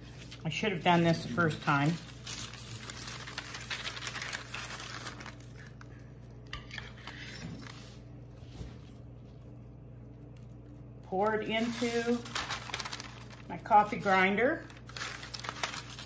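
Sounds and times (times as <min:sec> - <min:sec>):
parchment paper rustling: 0:00.0 - 0:16.0.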